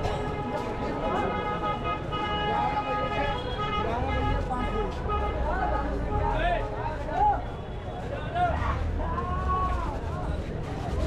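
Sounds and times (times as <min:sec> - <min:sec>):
many people talking: 0:00.0 - 0:11.0
traffic noise: 0:00.0 - 0:11.0.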